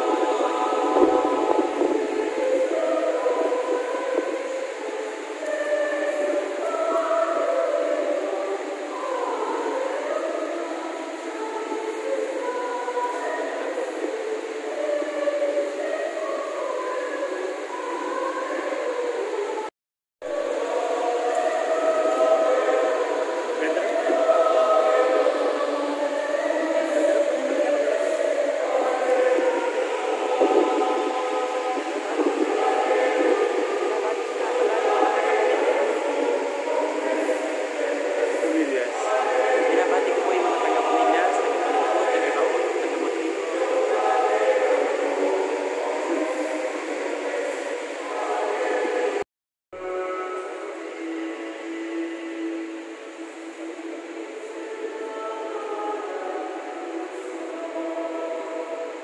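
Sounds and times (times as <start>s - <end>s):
choir singing a hymn: 0.0s - 59.0s.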